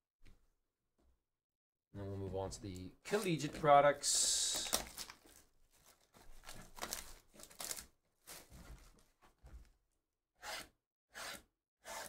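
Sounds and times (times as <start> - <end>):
plastic wrap tearing: 4.4 - 8.4.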